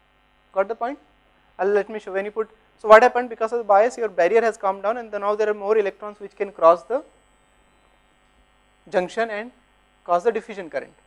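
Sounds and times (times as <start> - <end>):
faint electrical hum: 0.0 - 11.0
man lecturing: 1.6 - 7.1, 8.9 - 10.9.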